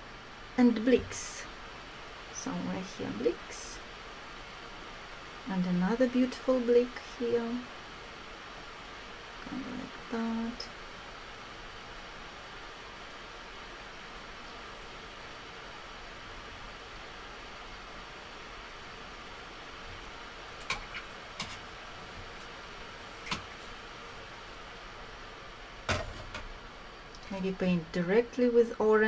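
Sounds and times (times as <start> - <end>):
steady background hiss: 0.0 - 29.0.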